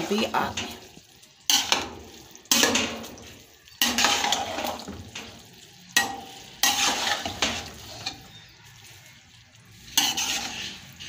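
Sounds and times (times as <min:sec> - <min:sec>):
metal spoon scraping rice pot: 0:03.8 - 0:04.8, 0:06.0 - 0:08.4, 0:09.8 - 0:11.0.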